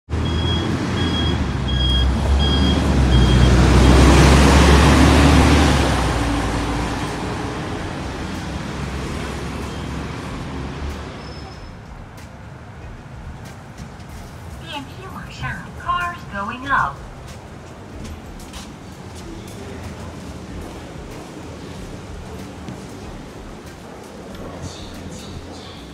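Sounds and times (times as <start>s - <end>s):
heavy vehicle passing: 0.1s - 25.9s.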